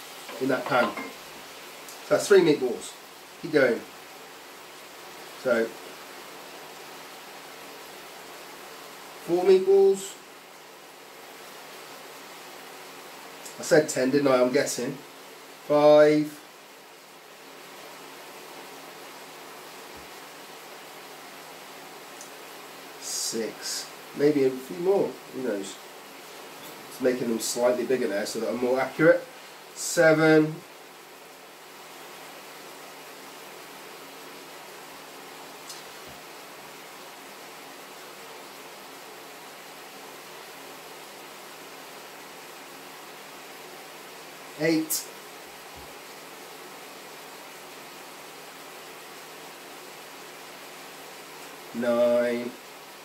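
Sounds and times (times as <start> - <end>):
vegetables sizzling in a frying pan: 0.0 - 53.0
faint click: 35.7 - 35.9.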